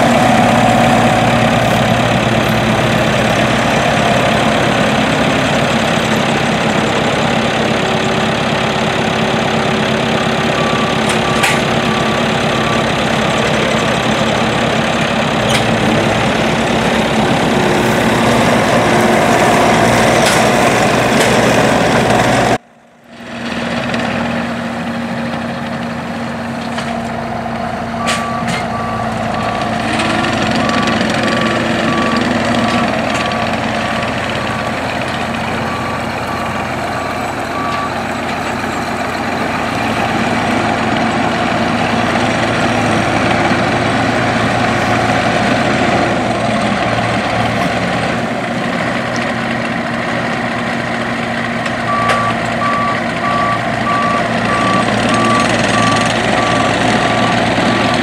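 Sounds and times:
diesel engine running under load: 0.0s - 58.0s
reversing alarm beeps: 10.5s - 13.6s, 28.0s - 34.7s, 35.6s - 39.0s, 51.9s - 58.0s.

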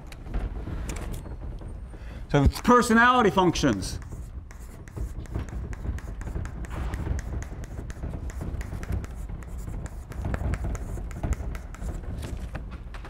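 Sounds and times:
chalk writing on blackboard: 3.2s - 12.5s.

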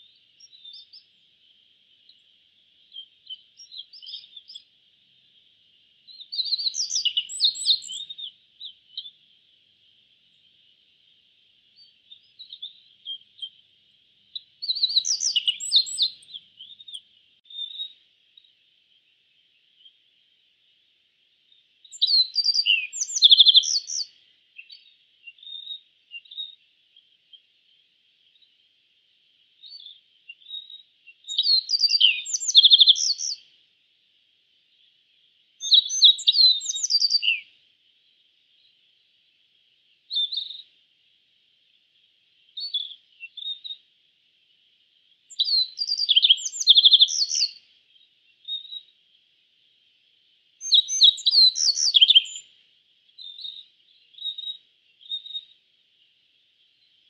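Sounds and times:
bird twittering song: 0.0s - 33.6s, 34.6s - 40.7s, 41.6s - 57.0s
faint high hiss: 0.0s - 57.0s.

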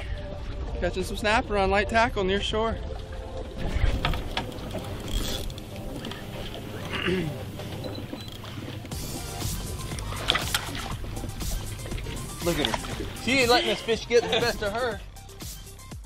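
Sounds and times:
wind and water rumble: 0.0s - 15.9s.

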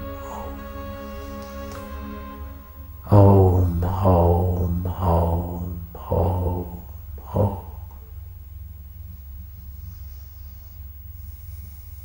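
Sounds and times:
steady held drone: 0.0s - 12.0s
man chanting in deep voice: 2.8s - 8.1s.

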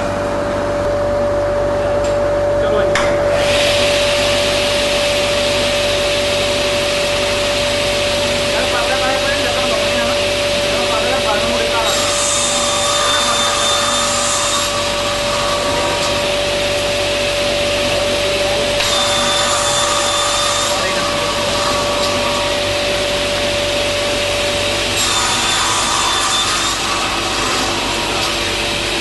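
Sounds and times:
panel saw humming: 0.0s - 29.0s
saw blade whining through wood: 9.6s - 29.0s.

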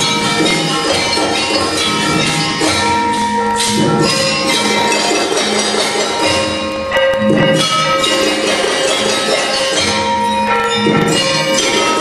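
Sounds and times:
gamelan ensemble playing: 0.0s - 12.0s.

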